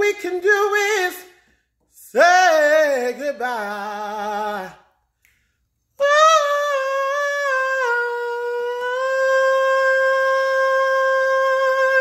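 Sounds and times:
man singing a long high note: 0:06.0 - 0:12.0.

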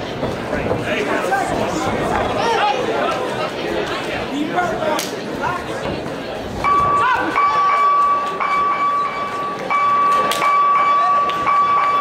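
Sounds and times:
crowd hubbub: 0:00.0 - 0:12.0
steady high-pitched tone: 0:06.6 - 0:12.0.

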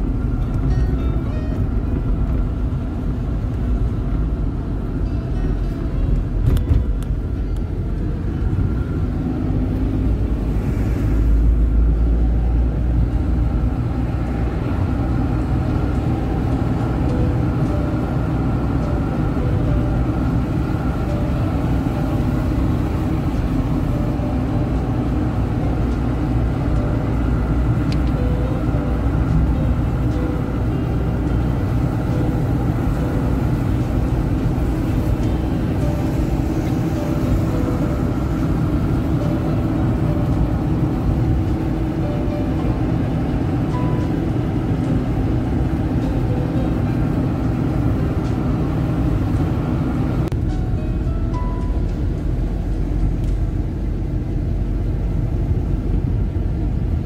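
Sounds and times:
car road and engine noise: 0:00.0 - 0:57.0.

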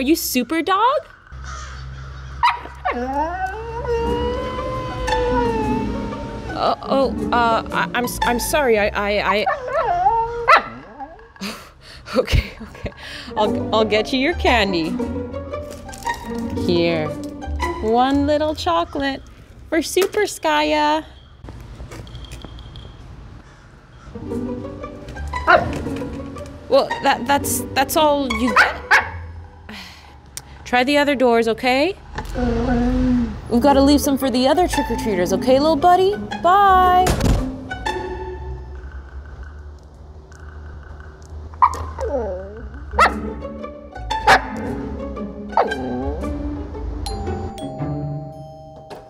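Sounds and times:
husky howling call: 0:01.5 - 0:06.5, 0:09.4 - 0:11.2
dog yowling: 0:02.4 - 0:06.4, 0:09.2 - 0:11.4
background music: 0:02.4 - 0:11.1, 0:12.2 - 0:19.0, 0:24.1 - 0:30.4, 0:32.0 - 0:39.6, 0:42.1 - 0:49.0.

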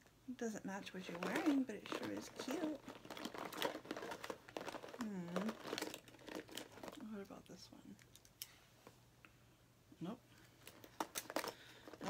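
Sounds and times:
plastic pouch rustling: 0:00.9 - 0:07.2, 0:10.5 - 0:12.0.

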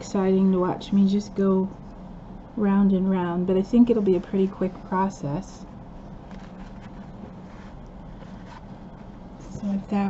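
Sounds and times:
low background hum: 0:00.0 - 0:10.0
fabric rustling and tapping: 0:06.2 - 0:10.0.

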